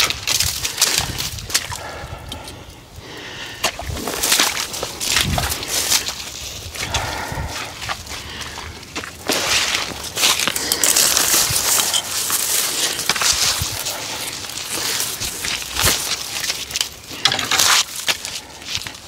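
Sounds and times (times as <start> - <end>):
branches rustling and dragged: 0.0 - 2.7, 3.7 - 19.0.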